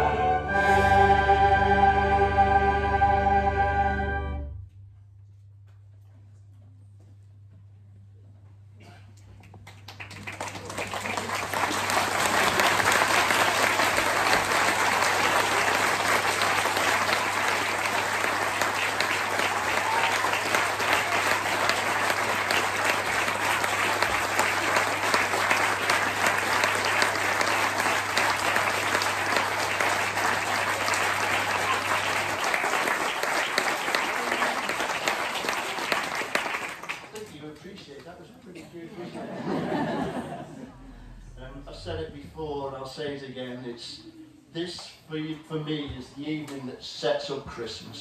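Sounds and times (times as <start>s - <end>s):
audience applauding: 9.4s - 38.1s
steady low hum: 39.0s - 43.1s.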